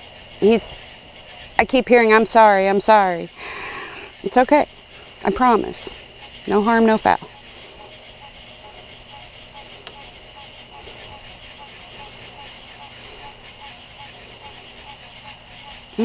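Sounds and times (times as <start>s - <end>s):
crickets and insects droning: 0.0s - 16.0s
faint lower insect call: 0.0s - 16.0s.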